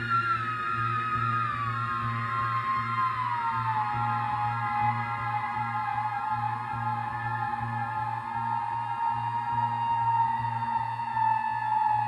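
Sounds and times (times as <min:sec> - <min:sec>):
theremin playing: 0:00.0 - 0:12.0.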